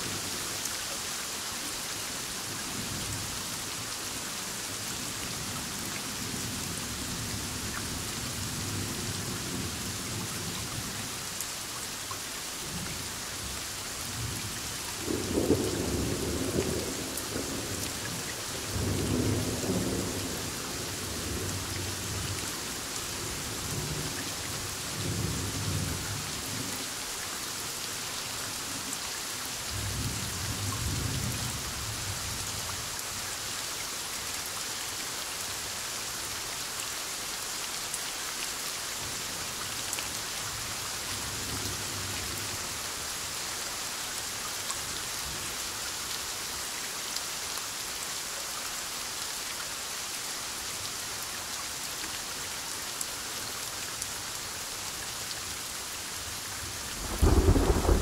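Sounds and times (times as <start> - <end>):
steady rain: 0.0 - 58.0
thunder rolling: 57.0 - 58.0.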